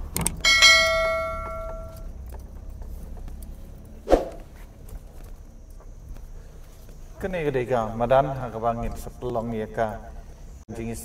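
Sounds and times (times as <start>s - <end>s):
bright bell chime: 0.4s - 2.0s.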